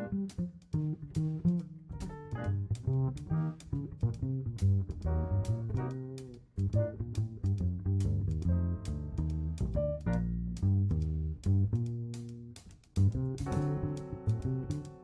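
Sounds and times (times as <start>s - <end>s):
bass line: 0.0s - 15.0s
jazz band playing: 0.0s - 15.0s.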